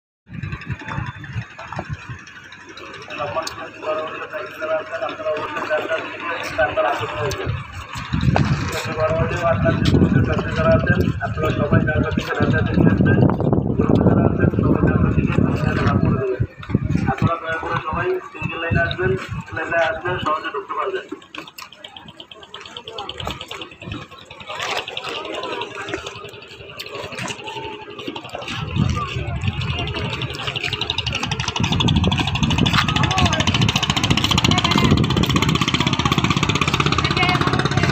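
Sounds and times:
engine running: 0.3 - 37.9
indistinct voices: 0.3 - 37.9
low rumble: 0.3 - 37.9
people talking: 0.3 - 37.9
fast even ticking: 17.2 - 37.9.

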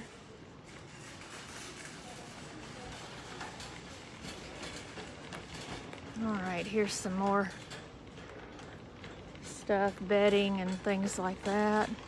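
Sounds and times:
shopping cart rolling rattle: 0.0 - 12.0
steady background noise: 0.0 - 12.0.

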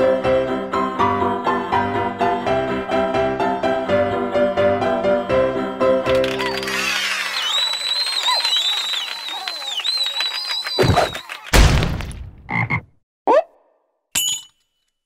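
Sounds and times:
high squeaky cartoon calls: 6.3 - 11.4.

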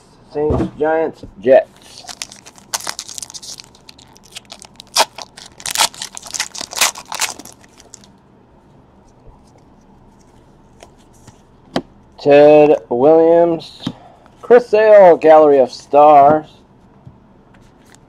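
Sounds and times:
wrapper tearing and crinkling: 1.8 - 8.1.

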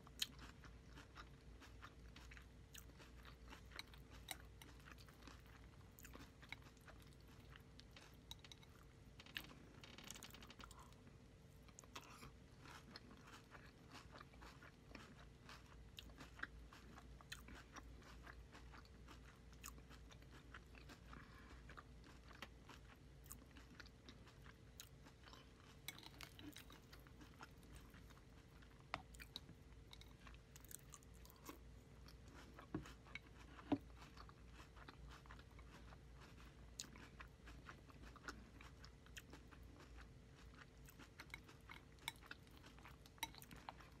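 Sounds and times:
crunchy cereal eating clicks: 0.0 - 11.0
chewing crunchy cereal: 0.0 - 44.0.

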